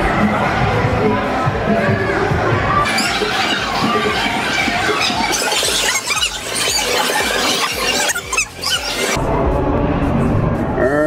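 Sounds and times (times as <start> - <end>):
people squealing and shrieking: 1.8 - 9.2.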